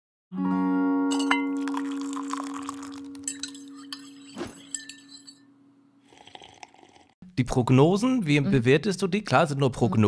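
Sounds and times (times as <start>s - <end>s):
glassy clinking and chiming: 1.1s - 5.5s.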